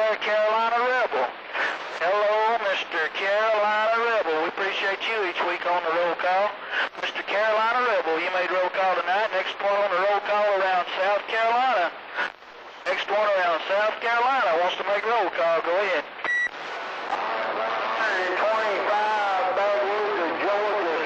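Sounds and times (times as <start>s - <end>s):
man's voice over cb radio: 0.0s - 12.3s, 12.9s - 16.1s, 17.0s - 21.0s.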